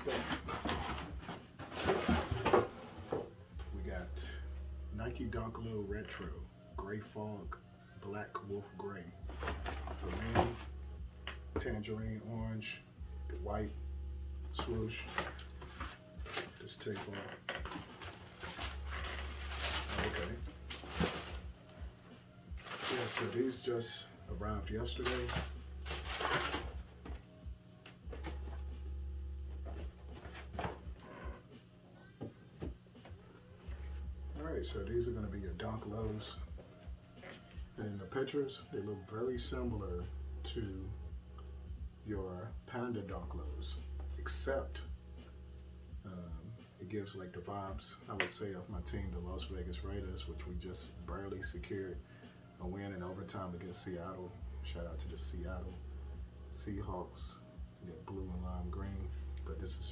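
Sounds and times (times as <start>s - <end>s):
cardboard scraping and knocking: 0.0s - 3.3s.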